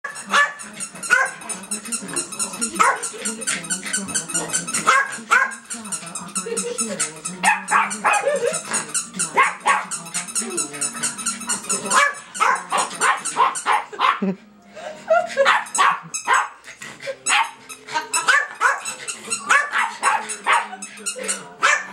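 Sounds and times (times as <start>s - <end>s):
small dogs barking: 0.1s - 1.6s, 2.7s - 3.2s, 4.8s - 5.6s, 7.4s - 10.0s, 11.9s - 14.3s, 15.4s - 16.6s, 17.3s - 17.6s, 18.2s - 21.9s.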